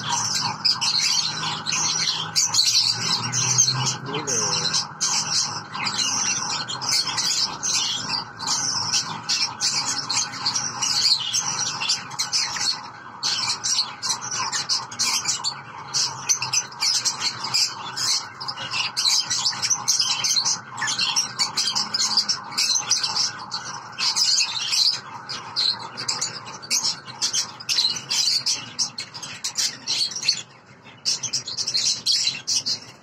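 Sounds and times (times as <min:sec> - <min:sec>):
lovebirds chirping: 0:00.0 - 0:33.0.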